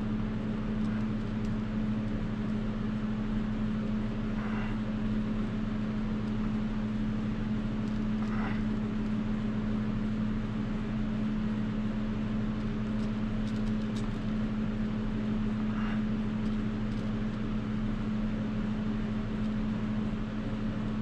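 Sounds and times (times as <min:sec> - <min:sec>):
machine hum: 0:00.0 - 0:21.0.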